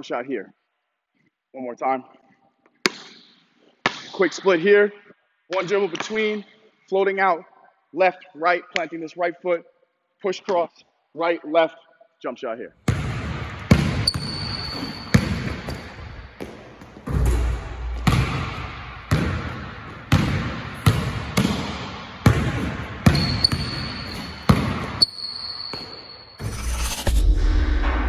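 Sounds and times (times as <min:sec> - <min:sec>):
basketball bouncing on hardwood floor: 0:12.9 - 0:26.0
high squeak: 0:14.0 - 0:15.2, 0:23.1 - 0:27.0.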